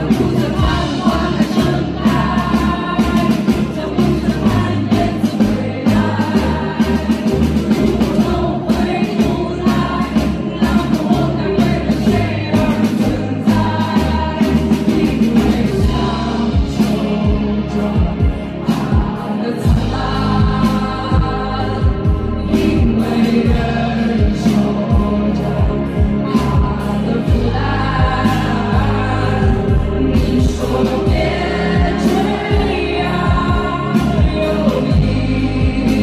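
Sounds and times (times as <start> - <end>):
drum kit beat: 0.0 - 36.0
keyboards: 0.0 - 36.0
live pop-rock band: 0.0 - 36.0
woman singing: 0.0 - 36.0.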